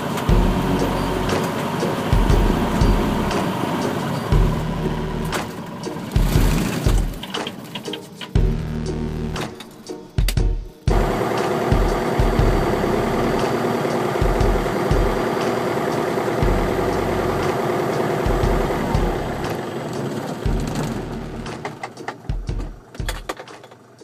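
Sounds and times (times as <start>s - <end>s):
aircraft engine running: 0.0s - 23.2s.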